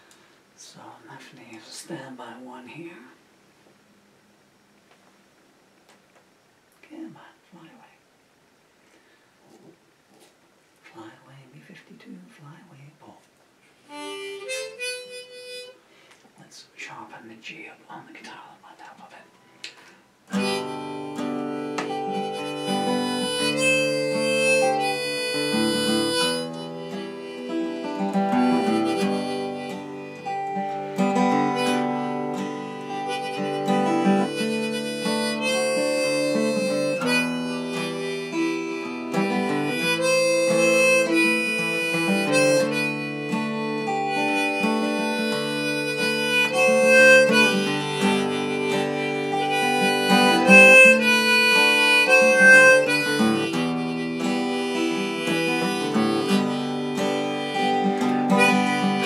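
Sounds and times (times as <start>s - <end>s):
harmonica notes: 13.8s - 15.9s, 20.3s - 59.0s
acoustic guitar chords: 13.9s - 15.8s, 20.2s - 59.0s.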